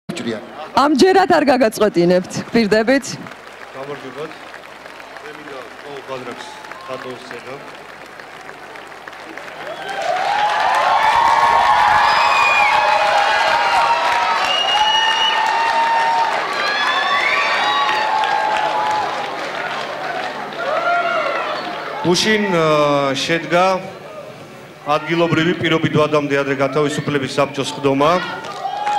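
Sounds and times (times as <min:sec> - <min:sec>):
audience applauding and cheering: 0:02.2 - 0:22.9, 0:28.1 - 0:28.9.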